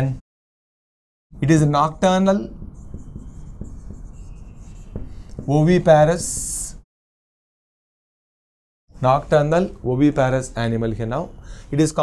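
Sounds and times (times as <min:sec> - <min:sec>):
marker squeaking on whiteboard: 0:01.9 - 0:06.7.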